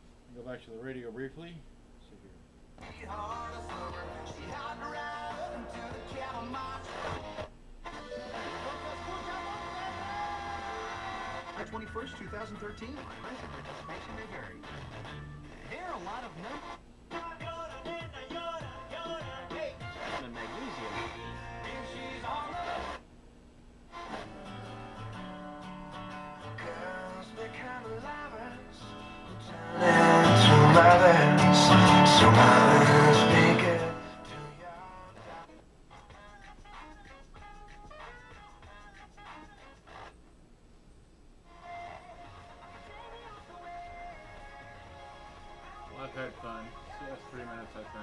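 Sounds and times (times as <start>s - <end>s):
music through radio speaker: 2.8s - 23.0s, 23.9s - 25.3s, 26.0s - 40.2s, 41.5s - 48.0s
radio tuning across stations: 2.8s - 23.0s, 41.5s - 48.0s
talk through radio speaker: 11.4s - 16.8s, 20.2s - 21.3s.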